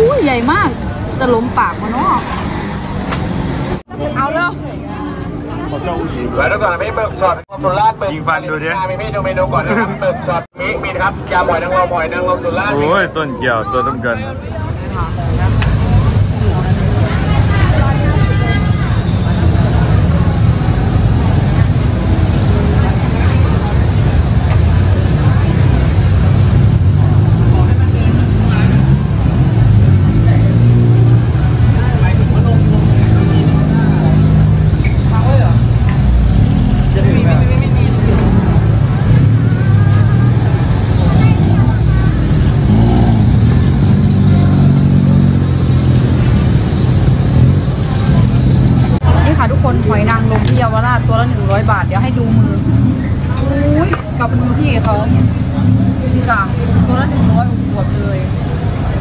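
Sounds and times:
road traffic rumble: 0:00.0 - 0:59.0
voices of passers-by: 0:00.0 - 0:59.0.

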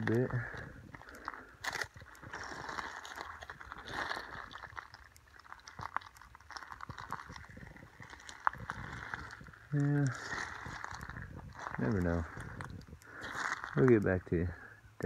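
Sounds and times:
footsteps crunching on stones: 0:00.0 - 0:14.2
rocks clicking underfoot: 0:00.0 - 0:15.0.

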